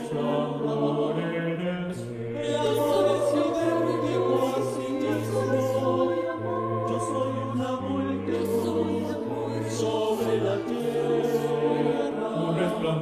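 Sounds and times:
mixed choir singing: 0.0s - 13.0s.

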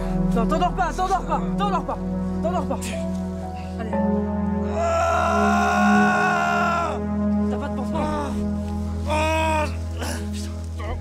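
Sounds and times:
background music: 0.0s - 11.0s
man's anguished cry: 4.7s - 7.1s.

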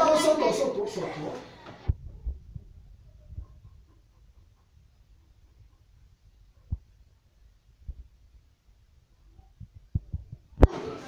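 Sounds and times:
voices chatting: 0.0s - 1.8s.

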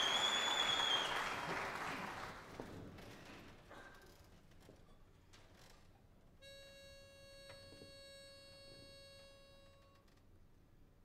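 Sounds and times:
faint audience clicks: 0.0s - 4.2s.

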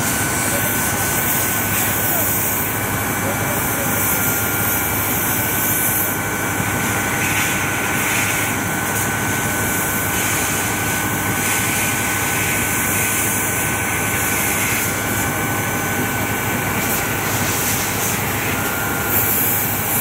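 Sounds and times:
high steady whine: 0.0s - 20.0s.

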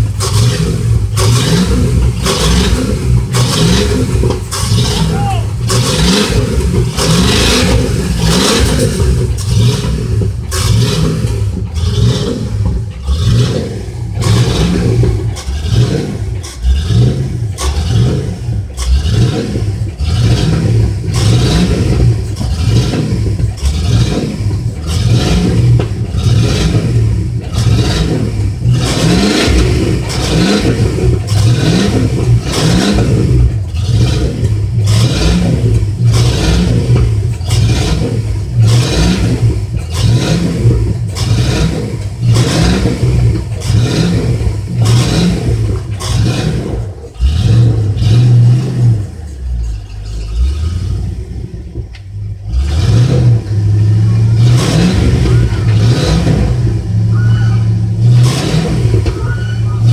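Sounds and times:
vehicle engine revving: 0.0s - 59.9s.

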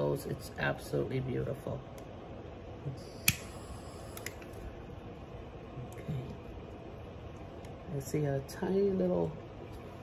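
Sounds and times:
low background hum: 0.0s - 10.0s
sharp click: 3.2s - 3.5s.

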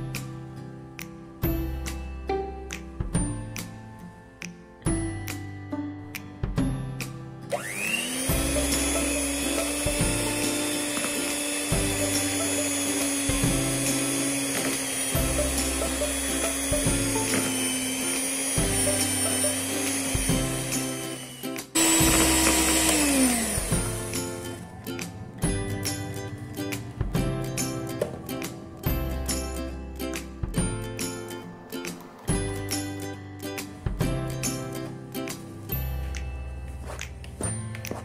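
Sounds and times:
background music with steady beat: 0.0s - 38.0s
electric mixer motor whining: 7.5s - 24.7s.

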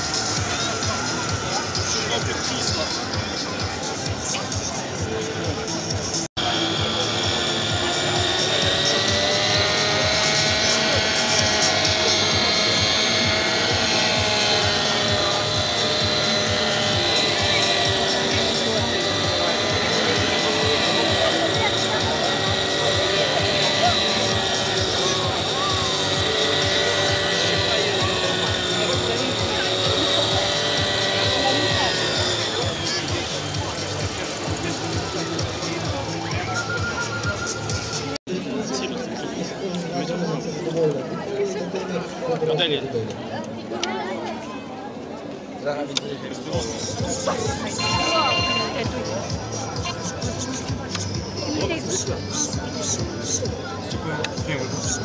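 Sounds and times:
model helicopter whine: 0.0s - 39.1s, 46.4s - 55.0s
crowd chatter: 0.0s - 55.0s.

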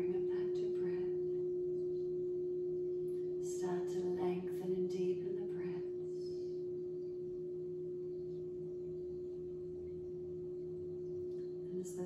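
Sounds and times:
singing bowl ringing: 0.0s - 12.0s.

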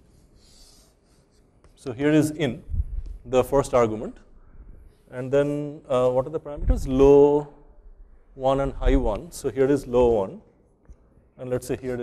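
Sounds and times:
chalk scratching on blackboard: 0.0s - 1.8s.

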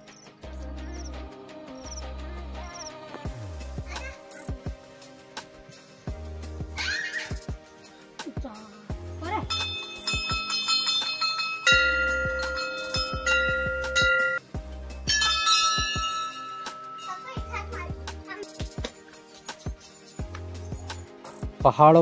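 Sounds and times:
music with deep bass beat: 0.0s - 22.0s
bell-like chiming notes: 9.2s - 18.5s.

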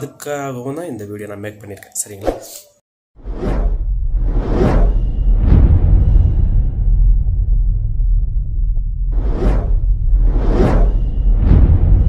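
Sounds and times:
whooshes: 3.2s - 12.0s
deep bass rumble: 3.7s - 12.0s.

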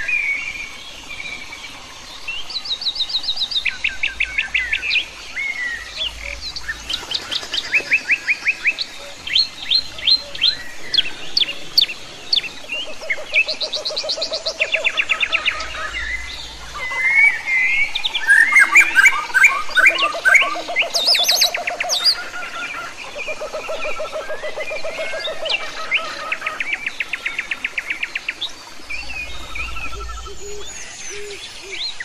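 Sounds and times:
birds singing and chirping: 0.0s - 32.0s.

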